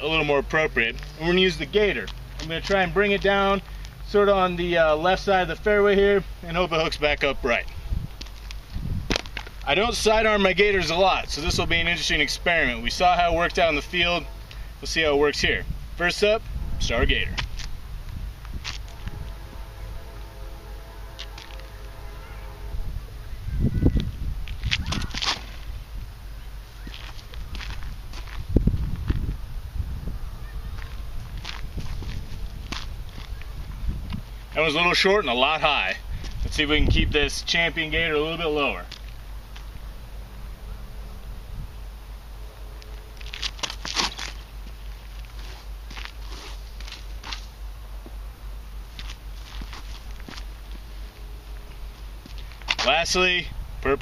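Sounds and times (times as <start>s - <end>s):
faint steady hum: 0.0s - 54.0s
scuffs and rustles of footsteps: 0.8s - 4.9s, 7.4s - 15.8s, 16.4s - 40.5s, 41.4s - 53.4s
wind rumbling on microphone: 7.2s - 34.6s, 35.9s - 38.2s, 39.0s - 47.2s, 49.0s - 54.0s.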